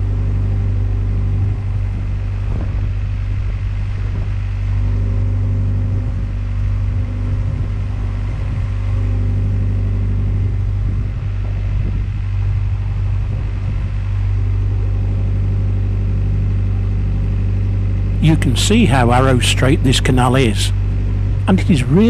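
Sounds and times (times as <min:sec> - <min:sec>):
diesel boat engine rumbling: 0:00.0 - 0:22.0.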